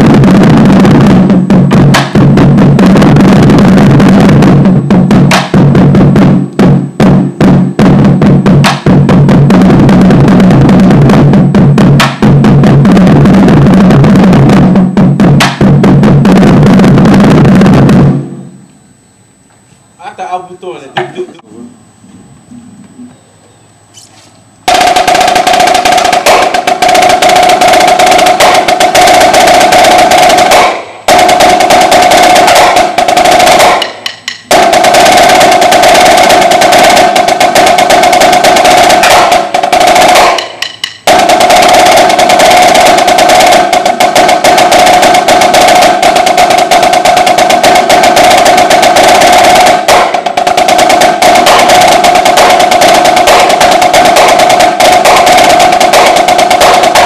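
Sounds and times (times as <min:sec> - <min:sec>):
marching snare drum rolls: 0:00.0 - 0:18.5, 0:24.6 - 0:57.0.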